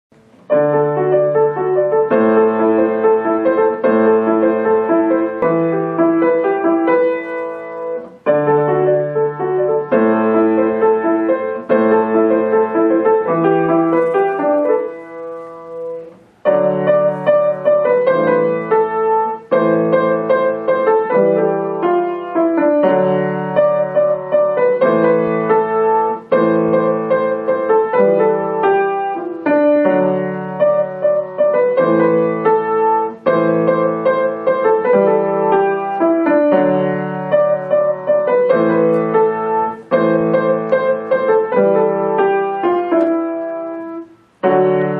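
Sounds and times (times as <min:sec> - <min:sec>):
grand piano melody: 0:00.1 - 0:44.9.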